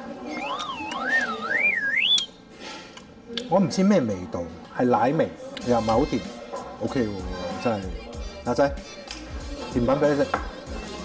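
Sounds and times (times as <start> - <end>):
wavering whistle tone: 0.2 - 2.4.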